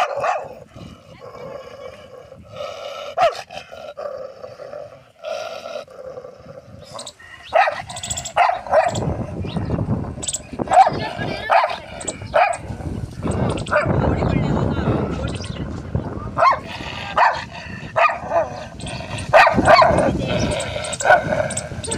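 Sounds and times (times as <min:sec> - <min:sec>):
dog barking: 0:00.0 - 0:00.6, 0:03.2 - 0:03.5, 0:07.0 - 0:09.2, 0:10.6 - 0:12.7, 0:13.6 - 0:14.0, 0:16.4 - 0:21.9
low rumble on microphone: 0:07.7 - 0:21.9.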